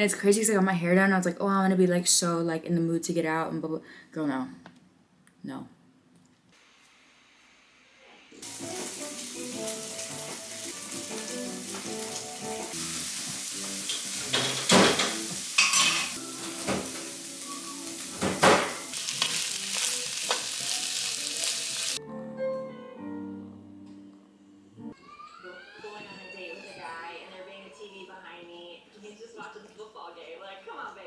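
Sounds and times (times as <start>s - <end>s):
food sizzling in a pan: 6.6s - 22.0s.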